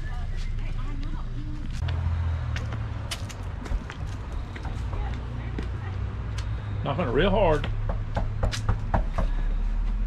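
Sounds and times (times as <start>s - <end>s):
footsteps on steps: 0.2s - 6.6s.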